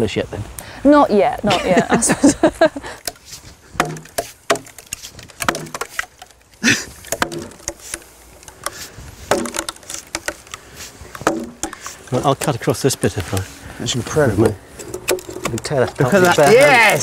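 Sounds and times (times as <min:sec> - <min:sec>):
mallet knocking wooden wedges: 0:03.8 - 0:06.4, 0:07.0 - 0:12.0.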